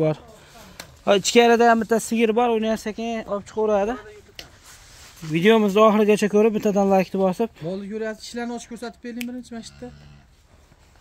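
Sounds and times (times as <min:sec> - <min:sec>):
man talking: 0:05.2 - 0:09.9.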